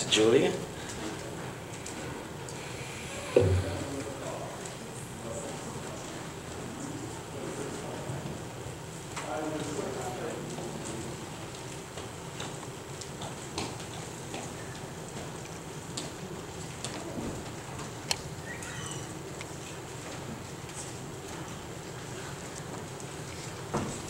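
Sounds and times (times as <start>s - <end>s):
faint murmured voices: 0.6s - 11.4s.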